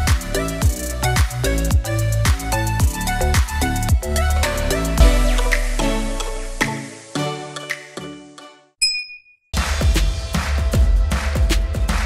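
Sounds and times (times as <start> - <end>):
electronic music with heavy bass: 0.0 - 7.8
notification bell ding: 8.8 - 9.4.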